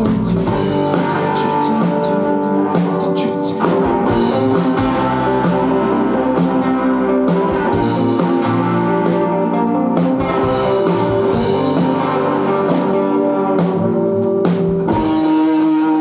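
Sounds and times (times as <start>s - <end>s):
psychedelic rock band playing: 0.0s - 16.0s.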